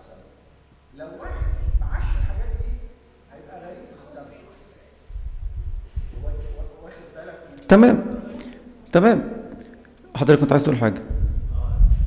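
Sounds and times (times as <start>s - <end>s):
deep rumble: 1.3s - 2.9s, 5.1s - 6.8s, 11.1s - 12.0s.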